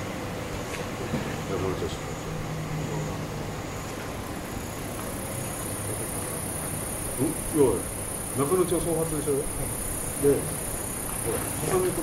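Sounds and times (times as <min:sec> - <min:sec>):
high-pitched hiss: 0:04.4 - 0:12.0.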